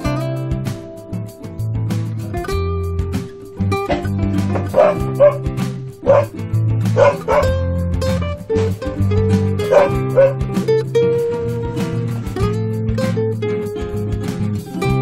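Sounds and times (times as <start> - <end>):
background music: 0.0 - 15.0
dog barking: 3.9 - 6.4, 7.0 - 7.5, 9.6 - 10.4.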